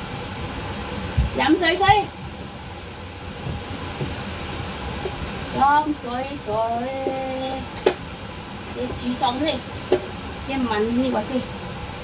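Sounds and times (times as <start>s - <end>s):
machinery humming and hissing: 0.0s - 12.0s.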